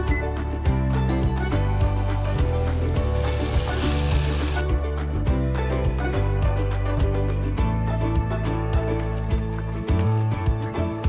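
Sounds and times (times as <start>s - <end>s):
background music: 0.0s - 11.0s
beef sizzling in hot oil: 2.1s - 4.6s.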